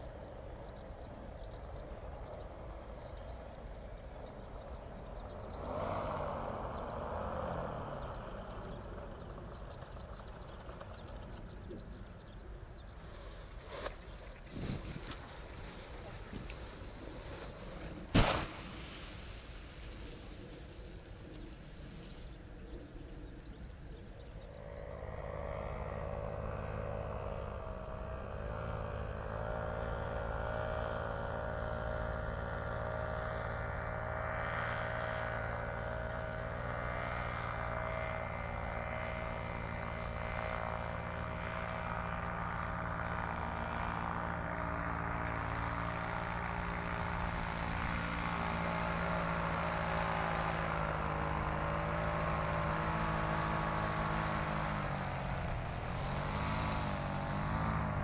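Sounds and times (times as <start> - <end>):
paramotor engine and propeller: 0.0 - 58.0.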